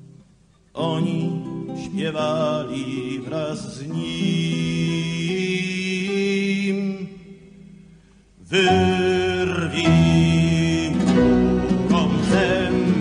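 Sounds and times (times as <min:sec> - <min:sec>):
person singing long notes: 0:08.4 - 0:13.0.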